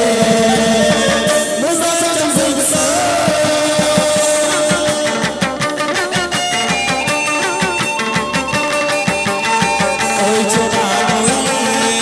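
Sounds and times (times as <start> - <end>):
plucked lute melody: 0.0 - 12.0
steady percussion beat: 0.0 - 12.0.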